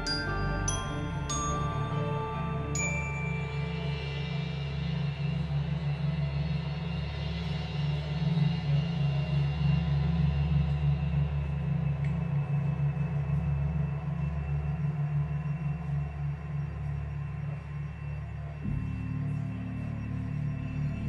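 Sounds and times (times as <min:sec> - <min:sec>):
deep pulsing low drone: 0:00.0 - 0:21.0.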